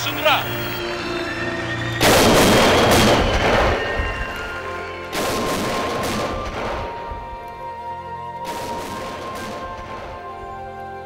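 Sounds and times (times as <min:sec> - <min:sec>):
music with sustained notes: 0:00.0 - 0:11.0
bursts of gunfire: 0:05.1 - 0:07.1.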